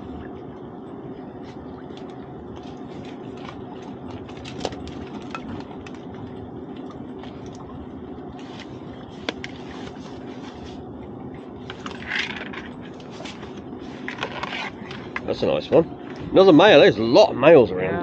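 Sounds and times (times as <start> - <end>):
steady low hum: 0.0 - 18.0
scraping rustling handling noises: 8.4 - 10.9, 11.6 - 15.4.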